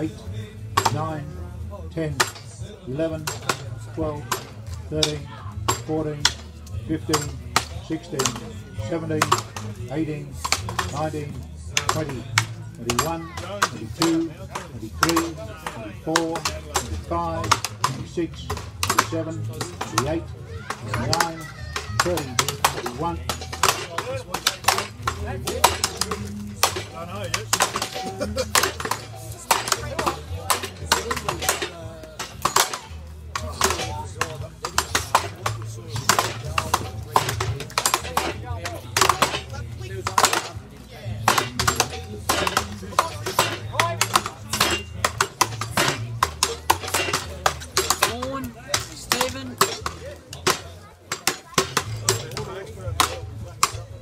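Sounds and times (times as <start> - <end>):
axes chopping wood blocks: 0.7 - 1.3, 2.1 - 54.0.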